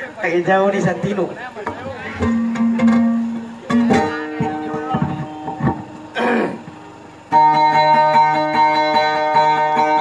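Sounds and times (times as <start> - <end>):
held low guitar note: 1.7 - 10.0.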